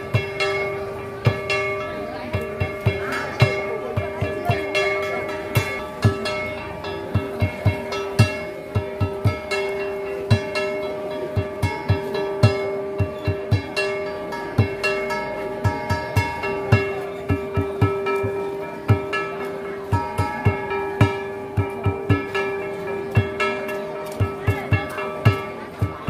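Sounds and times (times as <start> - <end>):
hand drum beating: 0.0 - 26.0
steady held notes: 0.0 - 26.0.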